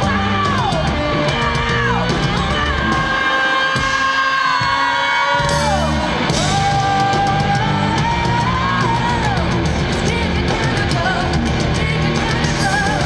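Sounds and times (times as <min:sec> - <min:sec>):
bass and drums: 0:00.0 - 0:13.0
electric guitar: 0:00.0 - 0:13.0
woman singing: 0:00.0 - 0:13.0.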